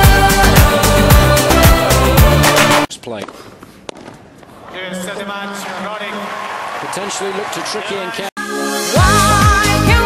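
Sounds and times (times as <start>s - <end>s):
racket striking ball: 3.2s - 4.5s
man commentating: 4.7s - 8.3s.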